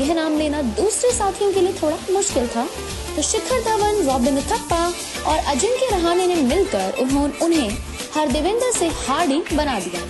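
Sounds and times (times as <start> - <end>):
background music with bass line: 0.0 - 10.0
woman narrating: 0.0 - 10.0.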